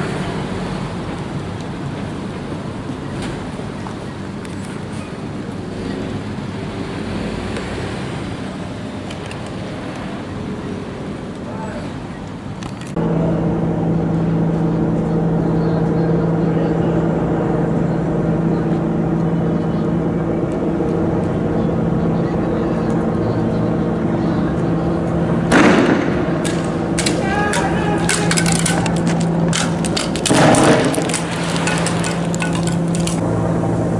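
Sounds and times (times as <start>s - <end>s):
vehicle engine rumbling: 0.0s - 33.9s.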